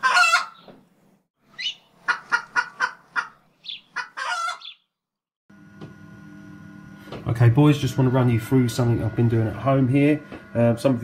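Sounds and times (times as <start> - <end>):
chicken clucking: 0.0 - 0.8, 1.6 - 4.8.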